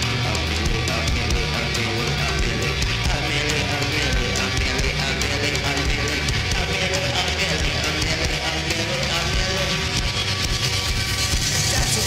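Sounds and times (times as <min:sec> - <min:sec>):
electric guitar: 0:00.0 - 0:12.0
steady drum beat: 0:00.0 - 0:12.0.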